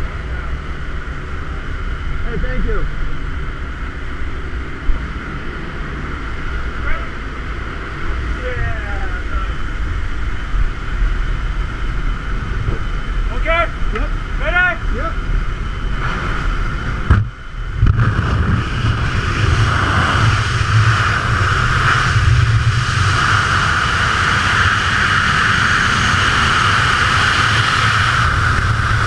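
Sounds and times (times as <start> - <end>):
plane engine droning: 0.0 - 29.0
wind noise: 0.0 - 29.0.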